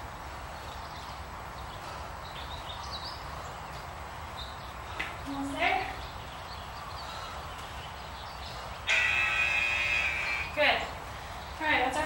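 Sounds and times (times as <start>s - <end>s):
buzzing timer beep: 8.9s - 10.5s.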